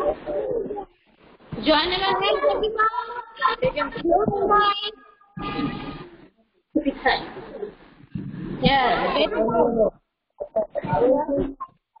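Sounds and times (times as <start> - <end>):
voices over a video call: 0.0 - 12.0.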